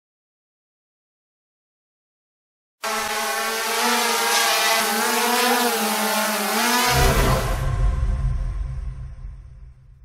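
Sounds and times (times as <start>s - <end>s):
drone propellers whining: 2.8s - 8.8s
deep low boom: 7.4s - 10.0s.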